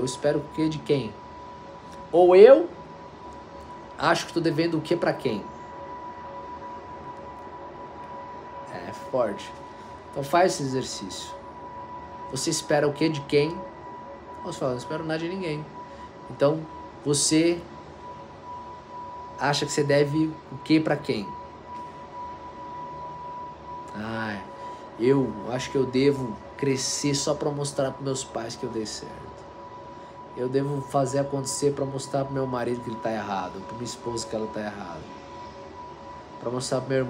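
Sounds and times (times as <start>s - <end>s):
low room noise: 0.0s - 37.0s
steady held tone: 0.0s - 37.0s.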